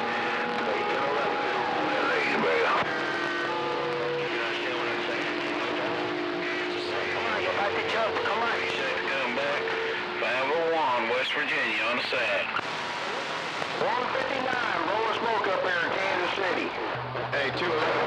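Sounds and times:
overlapping garbled radio voices: 0.0 - 18.0
radio static hiss: 0.0 - 18.0.

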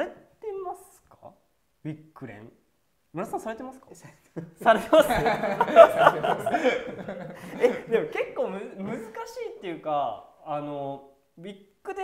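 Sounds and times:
men laughing: 4.4 - 9.2.

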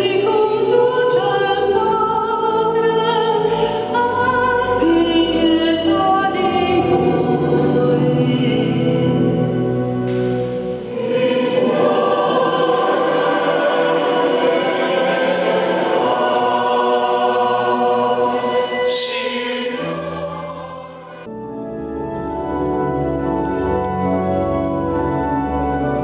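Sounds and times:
church choir singing: 0.0 - 21.3
pipe organ chord: 5.8 - 18.5.

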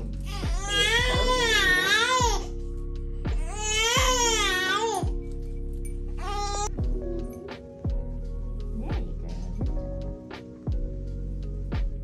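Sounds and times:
background music with held notes: 0.0 - 12.0
newborn baby crying: 0.1 - 2.5, 3.4 - 5.2, 6.2 - 6.7.

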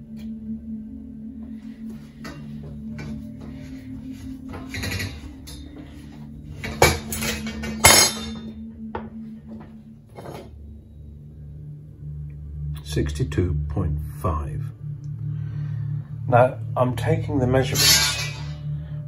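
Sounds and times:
background music: 0.0 - 19.0.

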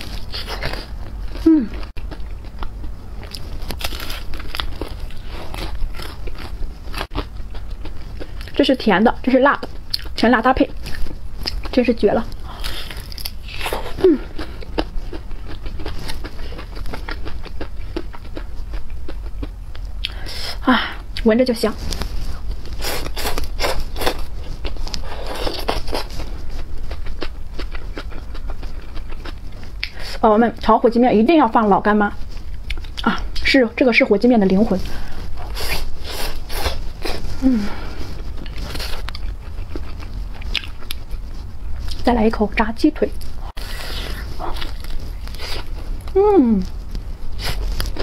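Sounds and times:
chewing crunchy fried chicken: 0.0 - 30.7, 32.2 - 33.5, 34.7 - 42.1, 43.2 - 48.0.

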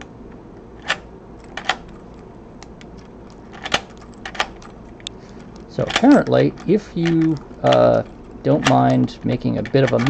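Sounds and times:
key clicking in lock: 0.8 - 10.0.

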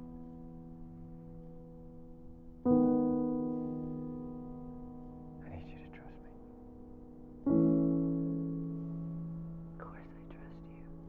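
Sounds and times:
person whispering: 5.4 - 6.6, 9.8 - 11.0.

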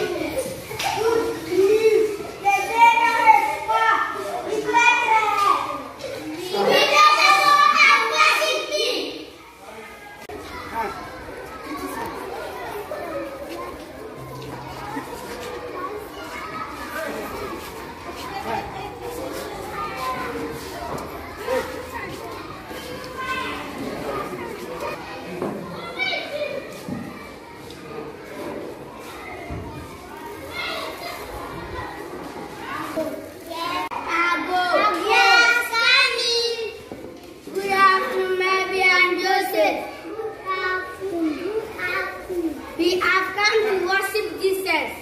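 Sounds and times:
children chattering: 0.0 - 45.0.

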